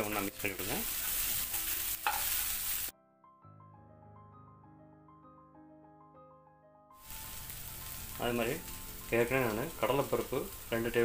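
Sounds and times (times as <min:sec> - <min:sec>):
vegetables sizzling in a pan: 0:00.0 - 0:02.9, 0:07.0 - 0:11.0
soft background music: 0:00.0 - 0:11.0.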